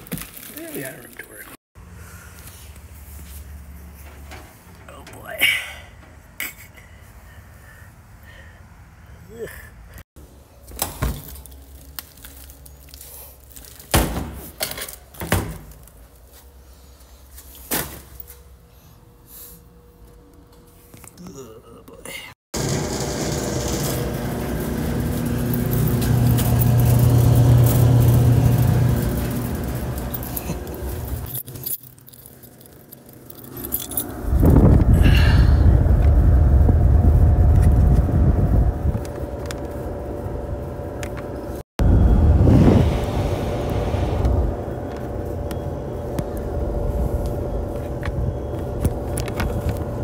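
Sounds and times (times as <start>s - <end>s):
clothes dryer humming: 22.6s - 31.4s, 34.2s - 50.0s
air rushing on microphone: 41.9s - 44.6s.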